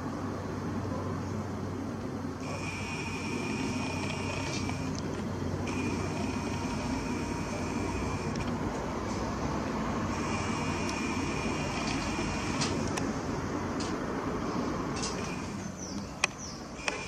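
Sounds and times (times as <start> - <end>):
camera zoom motor whining: 2.4 - 8.7, 10.1 - 13.0, 15.0 - 15.8.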